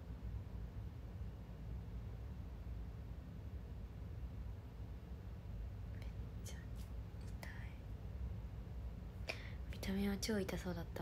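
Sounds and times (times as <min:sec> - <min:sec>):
low steady hum: 0:00.0 - 0:11.0
woman whispering and breathing: 0:05.9 - 0:07.9, 0:09.2 - 0:10.0.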